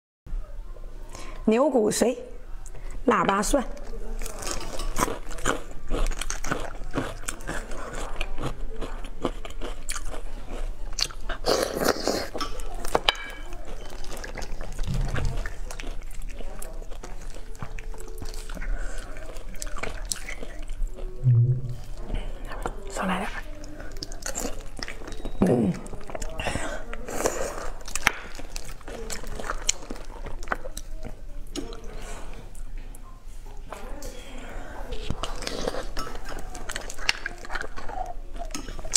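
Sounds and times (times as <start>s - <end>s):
chewing and lip-smacking: 3.7s - 21.2s, 23.5s - 32.7s, 35.0s - 38.9s.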